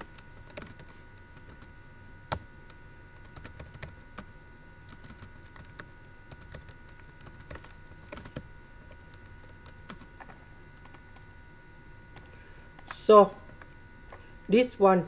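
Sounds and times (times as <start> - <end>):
computer keyboard typing: 0.1 - 1.7, 3.2 - 8.5, 9.1 - 11.4.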